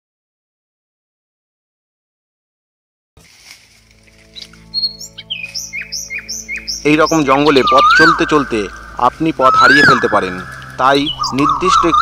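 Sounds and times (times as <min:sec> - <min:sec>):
low background music drone: 0:03.3 - 0:12.0
birds chirping: 0:03.7 - 0:12.0.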